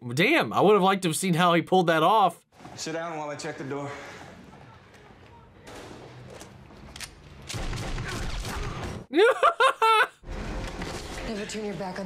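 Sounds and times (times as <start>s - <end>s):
gunshots: 7.4s - 9.1s.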